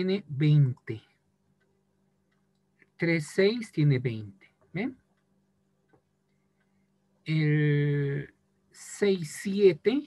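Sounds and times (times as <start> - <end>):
low steady hum: 0.0 - 10.0
faint click: 1.6 - 3.0.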